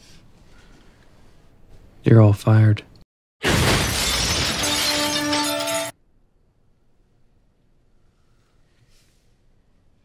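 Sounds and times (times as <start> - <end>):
crashing shattering noise: 3.4 - 6.0.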